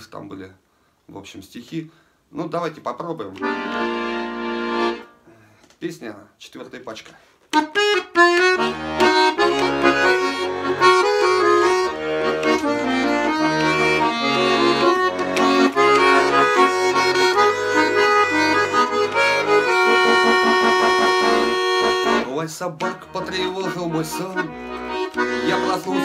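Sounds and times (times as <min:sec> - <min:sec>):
button accordion playing: 0:03.3 - 0:05.2, 0:07.5 - 0:26.0.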